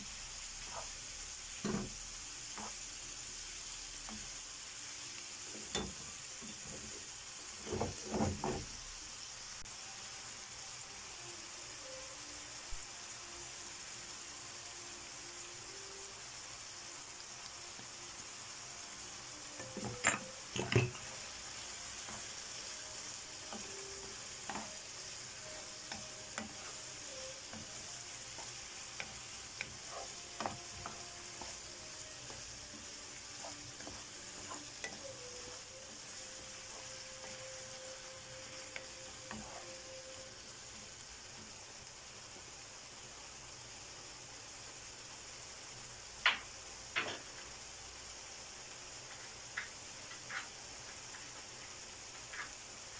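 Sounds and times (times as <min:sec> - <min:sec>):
food sizzling in a frying pan: 0:00.0 - 0:52.9
wooden spoon scraping food: 0:00.6 - 0:01.0, 0:20.7 - 0:37.7, 0:38.5 - 0:39.8
spoon knocking against pan: 0:19.6 - 0:21.2.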